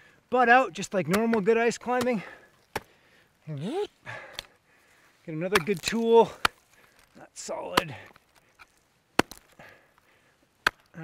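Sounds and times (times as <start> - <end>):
ice axe striking ice: 1.0 - 2.9, 5.4 - 6.8, 7.7 - 9.7.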